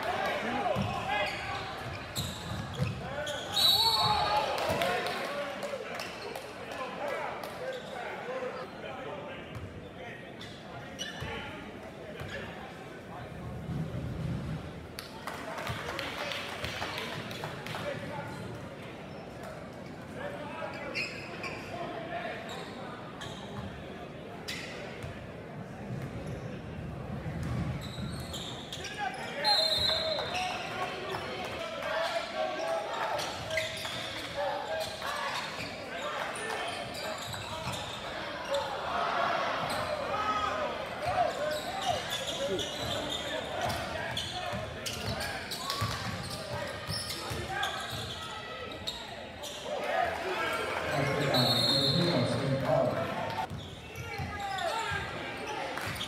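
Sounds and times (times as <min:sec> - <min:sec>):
crowd murmur and chatter: 0:00.0 - 0:56.0.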